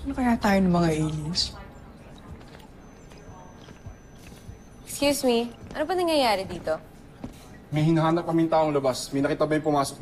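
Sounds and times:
low steady background noise: 0.0s - 10.0s
footsteps on hard floor: 5.6s - 7.5s.

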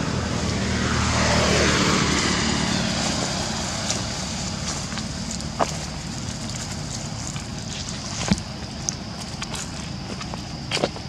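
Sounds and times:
motor vehicle passing by: 0.0s - 8.1s.

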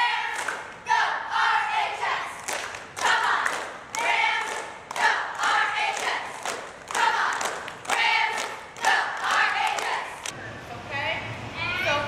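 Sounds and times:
girls shouting a cheer: 0.0s - 10.2s
sharp hand claps: 0.3s - 0.7s, 2.4s - 10.4s.

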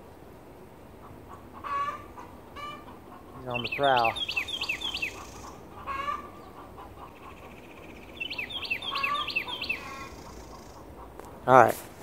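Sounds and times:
chickens squawking: 1.0s - 11.6s.

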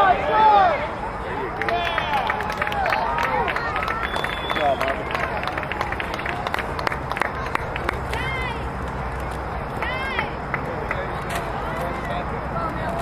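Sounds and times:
outdoor background: 0.0s - 13.0s
voices calling out: 0.0s - 13.0s.

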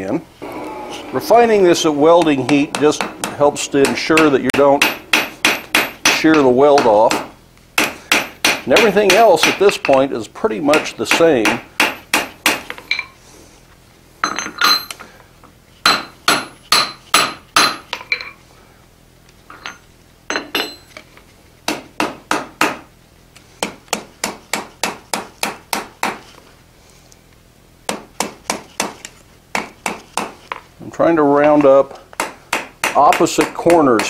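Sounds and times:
hammer striking hot iron on anvil: 1.3s - 10.0s, 10.7s - 12.6s, 15.9s - 17.9s, 31.4s - 34.0s.

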